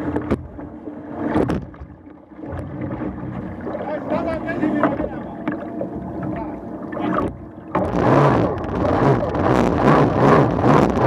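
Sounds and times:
outboard engine running: 0.0s - 11.0s
rushing water: 0.0s - 11.0s.

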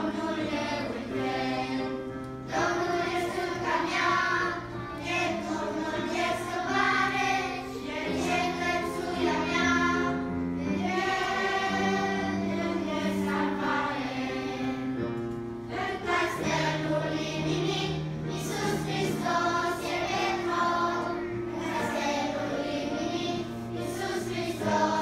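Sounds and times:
children's choir singing: 0.0s - 25.0s.

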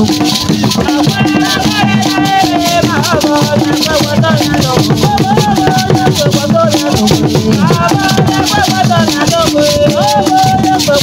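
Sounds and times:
low drum beats: 0.0s - 11.0s
rattles shaken in rhythm: 0.0s - 11.0s
voices singing: 0.0s - 11.0s.

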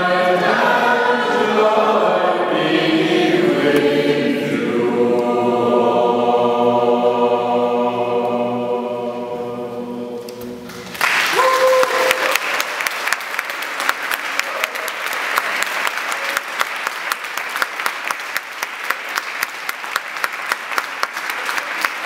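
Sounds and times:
choir singing held note: 0.0s - 12.6s
audience applause: 10.7s - 22.0s.

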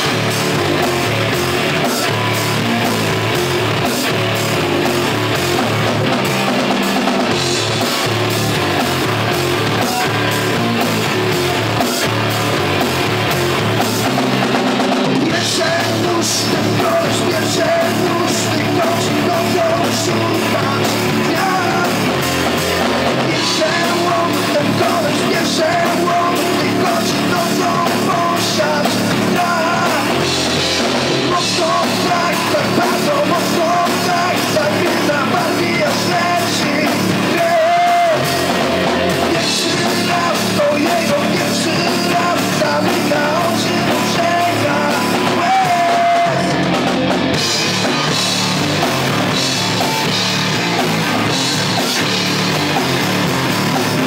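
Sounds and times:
drum kit: 0.0s - 54.0s
electric guitars: 0.0s - 54.0s
man singing into a microphone: 15.1s - 48.3s.

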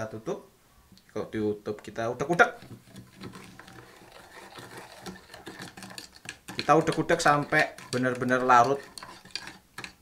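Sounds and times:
metal spoon scraping a plastic jug: 2.3s - 10.0s.

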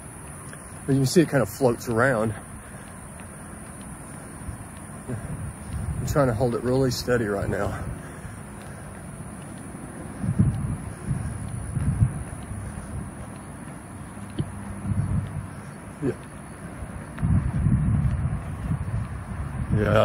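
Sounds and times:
man saying yeah: 16.0s - 16.2s, 19.7s - 20.0s.

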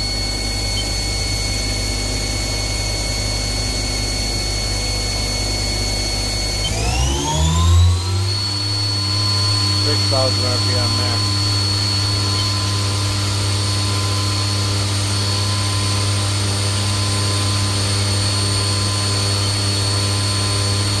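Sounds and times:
lathe spindle whining: 0.0s - 21.0s.

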